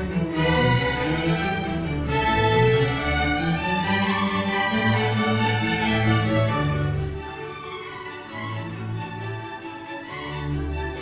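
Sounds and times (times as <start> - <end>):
orchestra bowed strings: 0.0 - 11.0.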